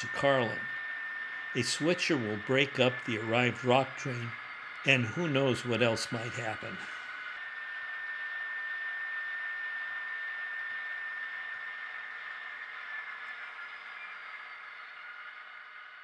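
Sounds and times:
held tones: 0.0s - 15.0s
model locomotive hissing hum: 0.0s - 16.0s.

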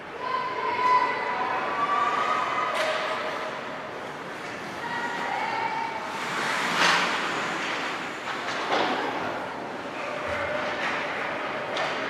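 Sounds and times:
spectators' voices: 0.0s - 12.0s
skates scraping ice: 6.0s - 11.7s
sticks and puck clattering: 6.1s - 12.0s.

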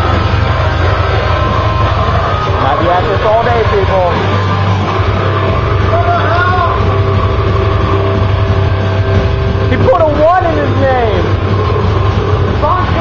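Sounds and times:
steady low rumble: 0.0s - 13.0s.

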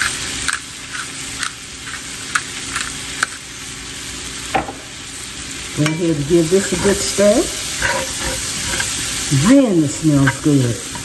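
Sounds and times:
potatoes sizzling in butter: 0.0s - 11.0s.

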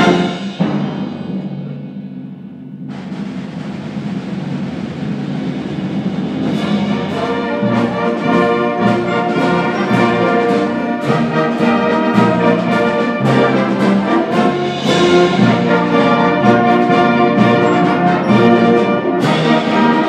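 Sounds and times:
accented band chords: 0.0s - 20.0s
concert band playing: 0.0s - 20.0s.

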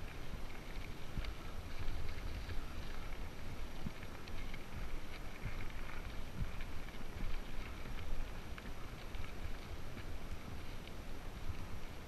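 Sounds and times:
bike ticks and rattles: 0.0s - 12.0s
tyres on gravel: 0.0s - 12.0s
wind rumbling on microphone: 0.0s - 12.0s.

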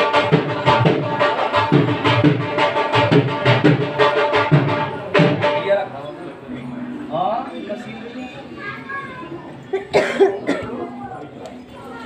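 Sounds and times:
person coughing: 9.7s - 10.8s.

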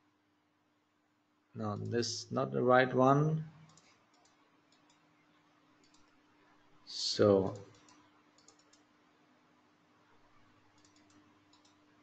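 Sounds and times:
computer mouse clicks: 3.6s - 5.1s, 5.8s - 6.2s, 7.4s - 8.9s, 10.7s - 11.9s.

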